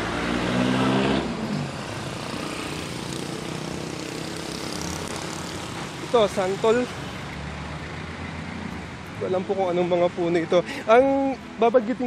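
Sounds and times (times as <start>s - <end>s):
street traffic noise: 0.0s - 12.0s
vehicle engine humming: 0.0s - 12.0s.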